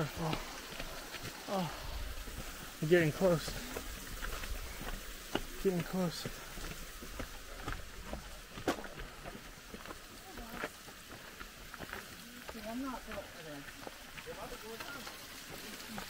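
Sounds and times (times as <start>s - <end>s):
steady faint hiss: 0.0s - 10.3s
footsteps on trail: 0.0s - 16.0s.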